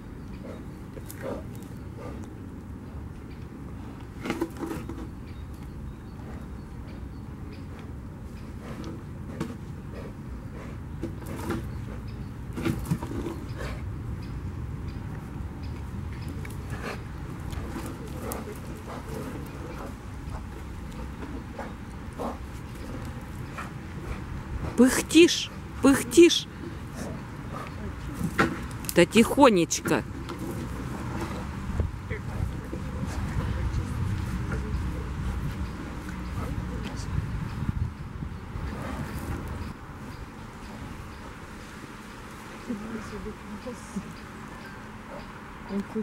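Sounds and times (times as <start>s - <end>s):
heavy puffing breaths: 0.4s - 2.4s, 7.7s - 14.0s, 16.5s - 28.4s
bear gnawing wood: 15.9s - 24.7s.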